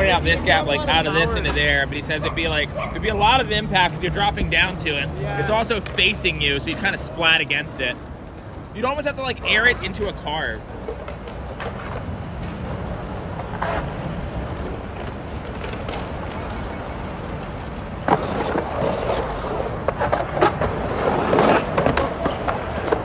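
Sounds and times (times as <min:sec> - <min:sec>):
skateboard wheels rolling on concrete: 0:00.0 - 0:23.0.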